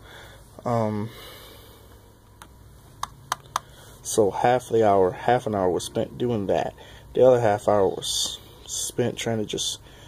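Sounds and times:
soft breath: 0.0 - 2.1.

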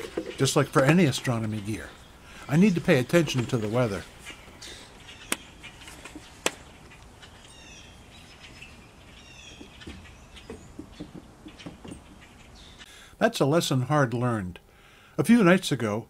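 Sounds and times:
small birds chirping: 0.0 - 16.0
soft knocks: 9.5 - 12.2.

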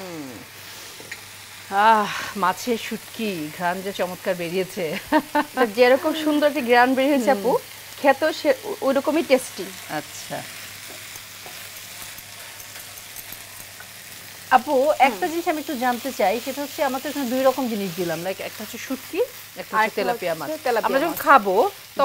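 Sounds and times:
fish sizzling in oil: 0.4 - 22.0
women talking: 1.7 - 10.5, 14.5 - 21.7.

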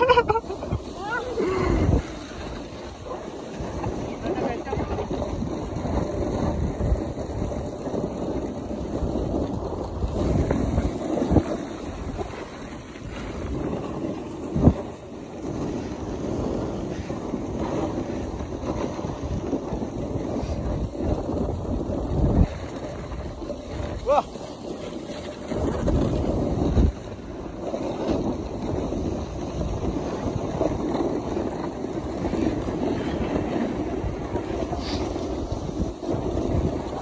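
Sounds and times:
snowboard sliding on snow: 0.0 - 37.0
wind rushing over microphone: 0.0 - 37.0.

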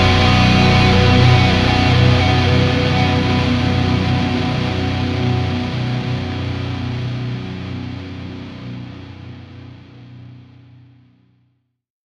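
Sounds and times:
distorted electric guitar chord: 0.0 - 10.8.

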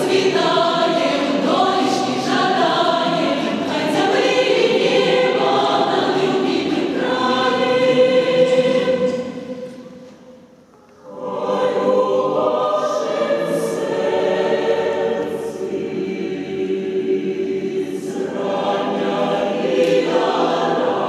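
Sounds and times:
choir singing a cappella: 0.0 - 21.0.

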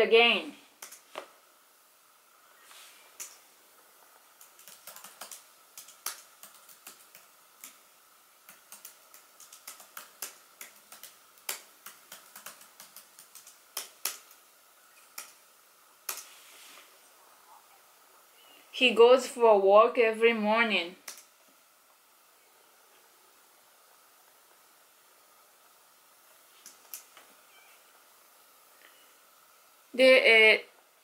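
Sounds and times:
laptop keyboard typing: 0.8 - 1.2, 4.4 - 15.4, 21.0 - 21.3.

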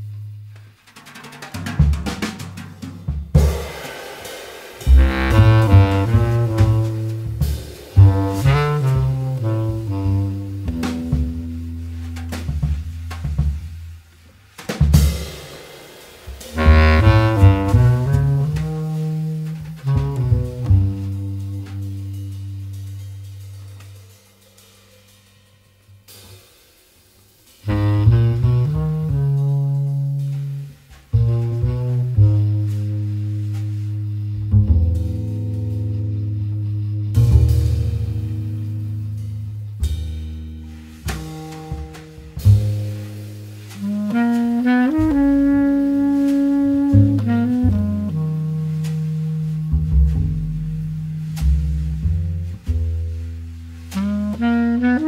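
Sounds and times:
jazz trio playing: 0.0 - 55.0.

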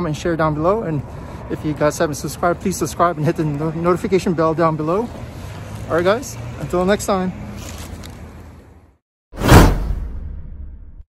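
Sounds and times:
whoosh sound effect: 9.4 - 11.0.

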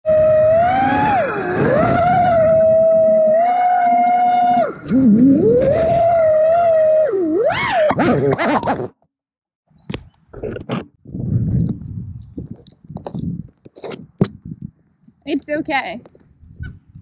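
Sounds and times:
drone motors whining: 0.1 - 7.9.

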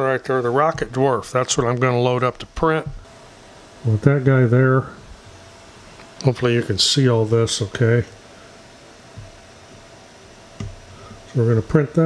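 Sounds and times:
faint hum: 0.0 - 12.0
low steady hiss: 0.0 - 12.0.

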